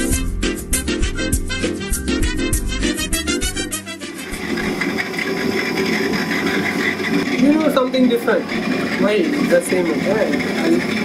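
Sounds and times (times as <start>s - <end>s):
intro music: 0.0s - 11.0s
potter's wheel running: 4.1s - 11.0s.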